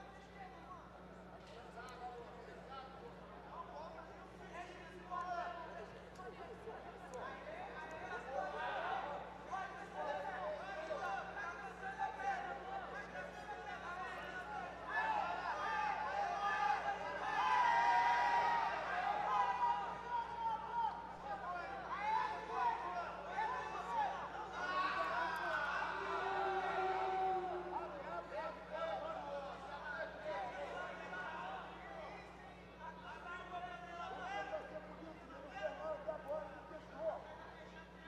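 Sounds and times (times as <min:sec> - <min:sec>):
crowd chatter: 0:00.0 - 0:38.0.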